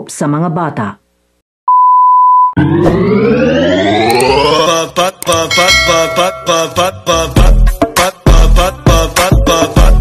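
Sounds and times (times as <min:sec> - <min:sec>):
rising synthesized sweep: 0:02.6 - 0:04.8.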